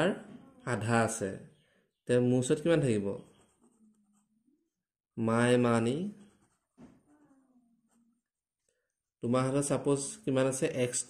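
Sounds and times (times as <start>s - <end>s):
ballpoint pen writing on paper: 3.2s - 4.3s, 6.1s - 8.1s.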